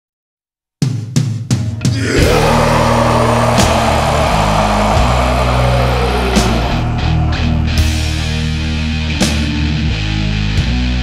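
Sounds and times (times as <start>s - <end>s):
death metal band playing: 1.9s - 9.8s.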